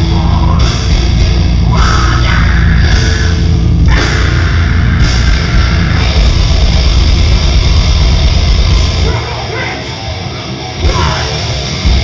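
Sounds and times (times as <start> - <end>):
distorted guitars: 0.0 - 12.0
live metal band playing: 0.0 - 12.0.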